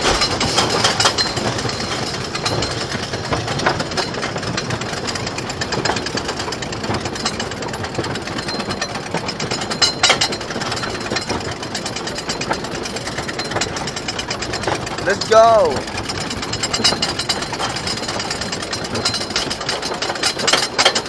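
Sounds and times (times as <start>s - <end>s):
loud clunk: 0.0s - 1.0s
roller coaster lift chain clacking: 0.0s - 21.0s.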